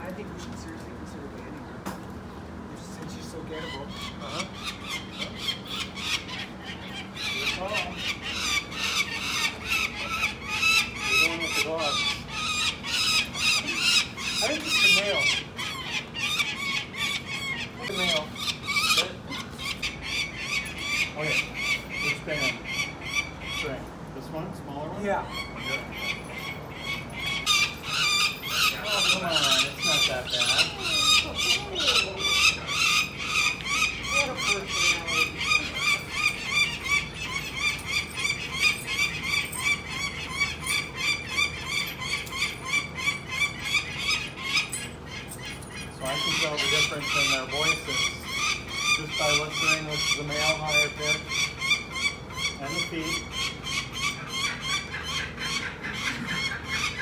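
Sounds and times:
falcon calling: 3.4 - 23.8, 24.9 - 57.0
faint voices: 23.6 - 42.9.

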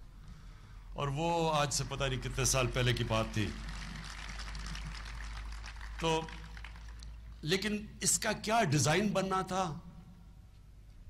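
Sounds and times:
background hiss and hum: 0.0 - 11.0
man speaking: 1.0 - 3.6, 7.4 - 9.8.

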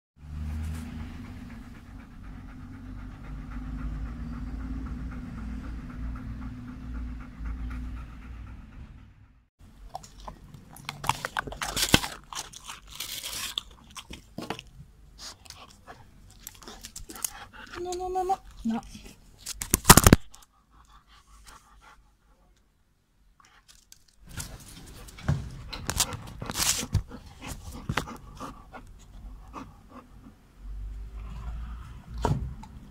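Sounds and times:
dog panting rapidly: 0.8 - 9.5, 25.0 - 30.3.

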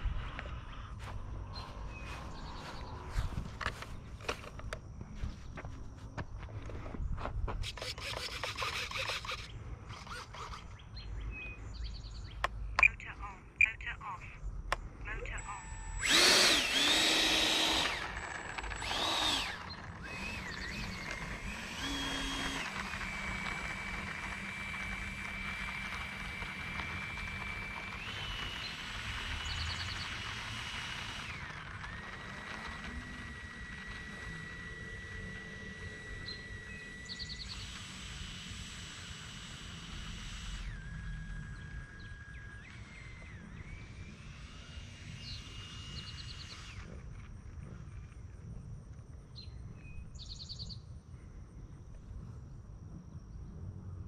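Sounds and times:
electric ducted fan whine: 0.0 - 54.0.

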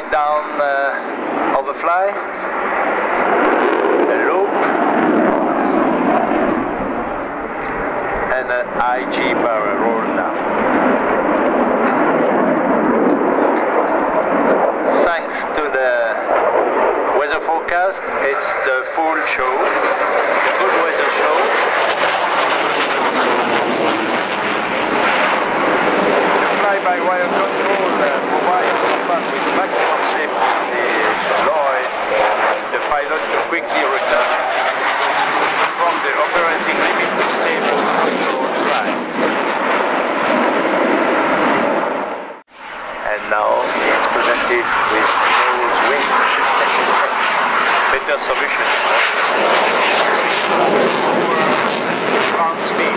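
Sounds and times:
jet engines roaring: 0.0 - 52.9.

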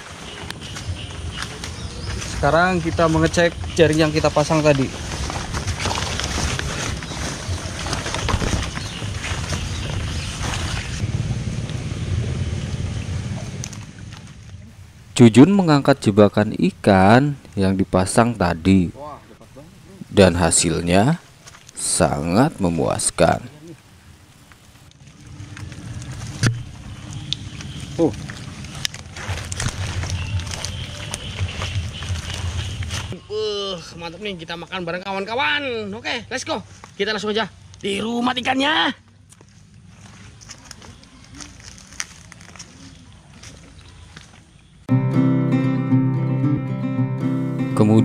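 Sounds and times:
rustling through wet leaves: 0.0 - 15.1, 21.3 - 33.2, 39.1 - 44.8
steady low rumble: 9.0 - 20.2, 23.8 - 33.2.

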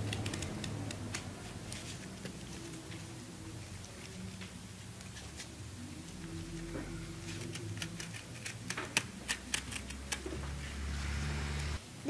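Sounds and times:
cardboard clicks and snips: 0.0 - 2.4
low steady hum: 0.0 - 12.0.

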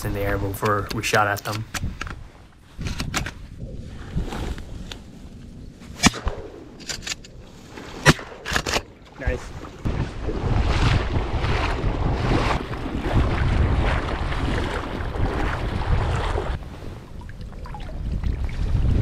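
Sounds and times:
wind noise on microphone: 0.0 - 19.0
shotgun shots: 8.0 - 8.8.

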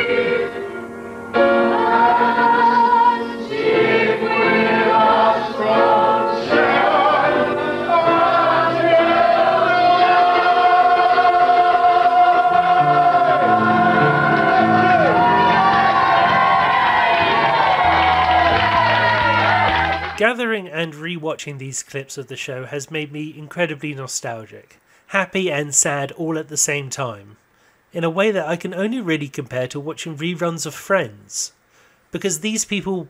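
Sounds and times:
group singing: 0.0 - 20.2
piano accompaniment: 0.0 - 20.2.

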